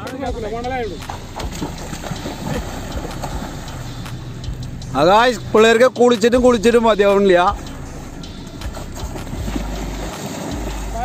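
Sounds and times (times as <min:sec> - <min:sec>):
feet splashing in shallow water: 0:01.0 - 0:04.6, 0:07.9 - 0:11.0.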